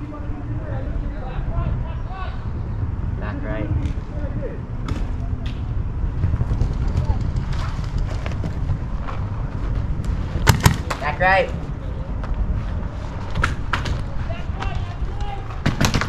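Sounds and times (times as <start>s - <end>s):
distant shouting voices: 0.0s - 6.0s, 14.0s - 15.8s
wind rumble on microphone: 0.0s - 16.0s.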